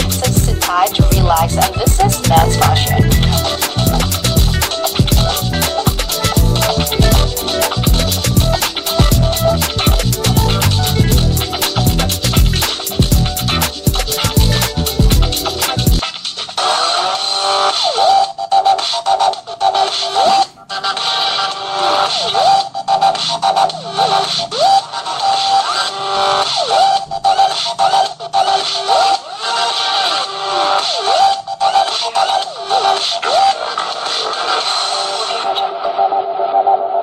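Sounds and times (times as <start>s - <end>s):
electronic music with synth tones: 0.0s - 37.0s.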